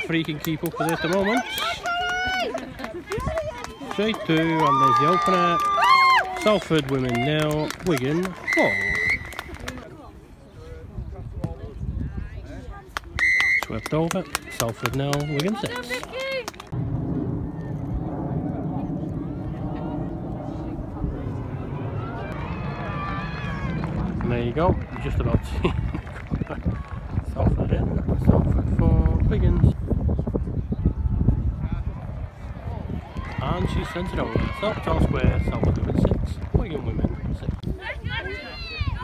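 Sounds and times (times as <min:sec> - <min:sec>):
distant spectator and player voices: 0:06.4 - 0:29.4
low rumble: 0:16.6 - 0:37.6.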